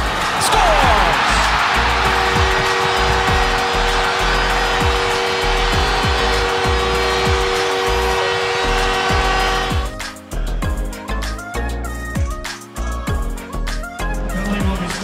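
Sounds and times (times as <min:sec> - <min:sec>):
arena crowd cheering: 0:00.0 - 0:09.9
two-tone goal horn: 0:01.9 - 0:10.0
instrumental backing track: 0:08.8 - 0:15.0.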